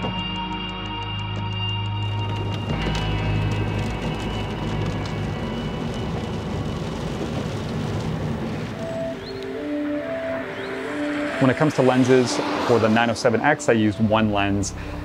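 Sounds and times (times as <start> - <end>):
background music: 0.0 - 7.6, 8.7 - 15.0
car tyre and engine noise: 2.0 - 15.0.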